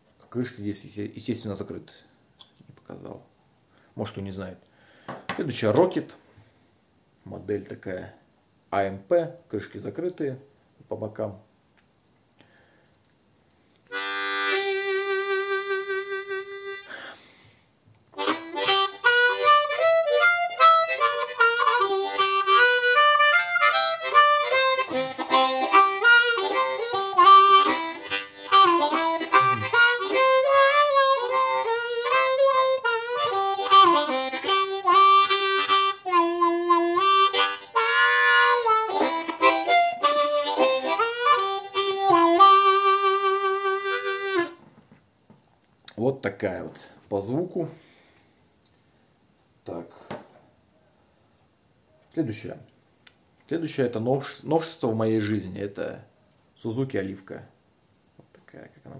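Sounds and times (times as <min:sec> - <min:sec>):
harmonica playing: 0:13.9 - 0:17.4, 0:18.2 - 0:44.7.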